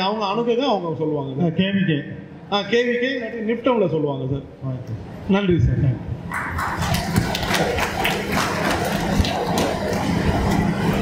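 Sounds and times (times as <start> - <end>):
steady low hum: 0.0 - 11.0
audience applauding: 6.3 - 11.0.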